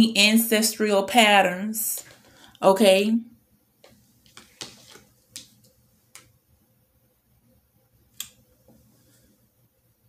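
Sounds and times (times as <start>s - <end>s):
cards clicking on table: 4.3s - 5.6s.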